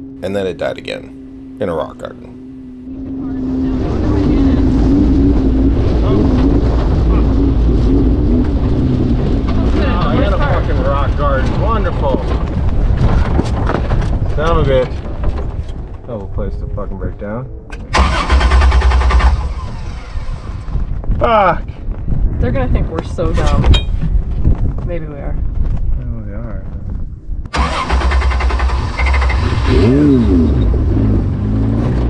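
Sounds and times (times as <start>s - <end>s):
car engine running and stalling: 2.8s - 16.3s, 17.7s - 21.0s, 27.5s - 32.0s
engine restart burst: 17.9s - 20.7s, 27.6s - 30.2s.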